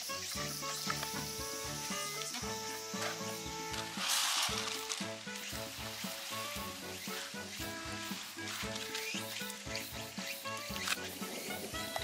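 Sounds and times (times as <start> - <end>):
background music with steady beat: 0.0 - 12.0
rice pouring into metal tin: 3.9 - 5.2.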